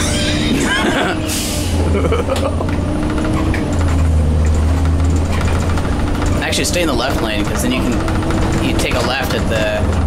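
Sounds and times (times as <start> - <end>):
bus engine drone from inside: 0.0 - 10.0.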